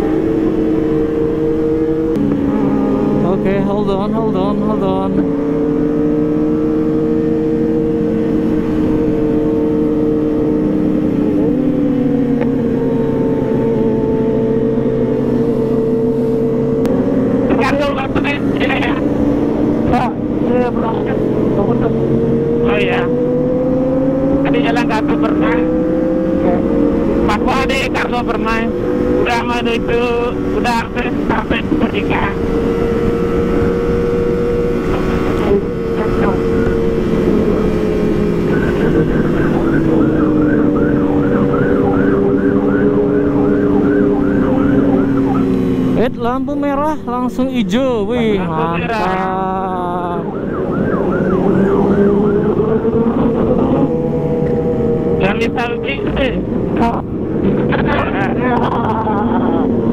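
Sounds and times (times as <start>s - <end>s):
motorcycle engine cruising: 0.0s - 59.9s.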